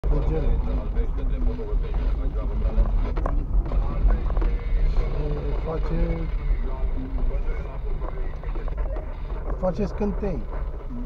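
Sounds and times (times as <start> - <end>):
car driving rumble: 0.0 - 11.0
voices or radio: 0.0 - 11.0.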